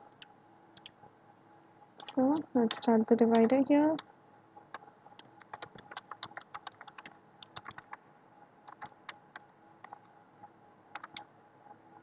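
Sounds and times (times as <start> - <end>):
faint keyboard typing: 0.0 - 1.0, 2.0 - 10.2, 10.8 - 11.3.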